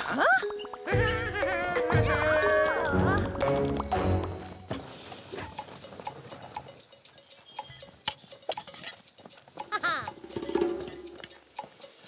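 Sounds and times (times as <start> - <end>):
small footsteps on dirt path: 2.6 - 12.0.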